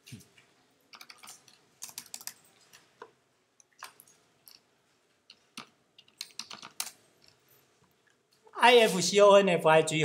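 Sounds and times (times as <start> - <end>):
keyboard typing clicks: 0.9 - 2.4, 5.3 - 7.4.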